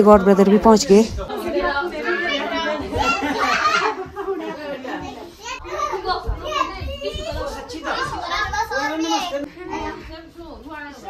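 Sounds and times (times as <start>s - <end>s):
adults and children chattering: 0.0s - 11.0s.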